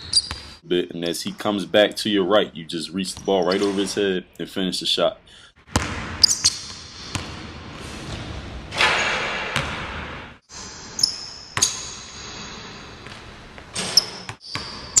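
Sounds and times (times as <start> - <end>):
basketball bouncing on gym floor: 5.7 - 8.3, 8.9 - 10.2.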